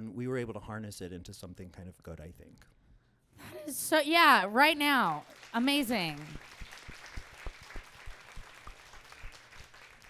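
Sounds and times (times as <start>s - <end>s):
audience applause: 5.2s - 10.0s.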